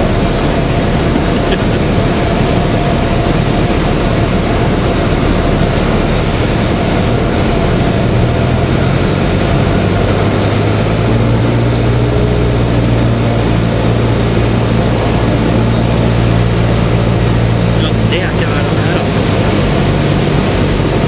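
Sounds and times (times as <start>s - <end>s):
aircraft engine and airflow noise: 0.0s - 21.0s
low engine hum: 0.0s - 21.0s.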